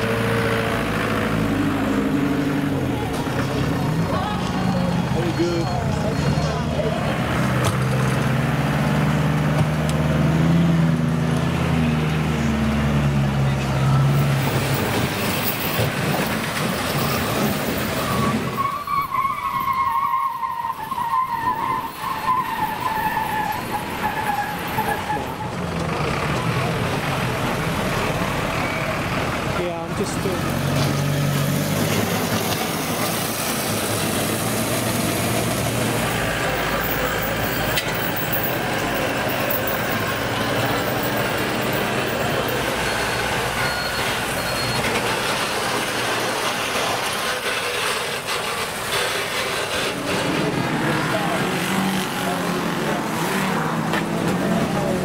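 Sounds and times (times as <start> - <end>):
truck engines running: 0.0 - 55.0.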